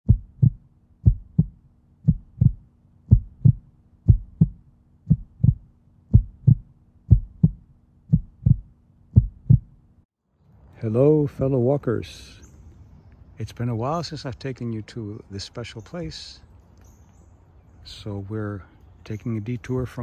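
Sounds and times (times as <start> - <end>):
heartbeat thumps: 0.0 - 9.8
faint steady hum: 0.1 - 19.5.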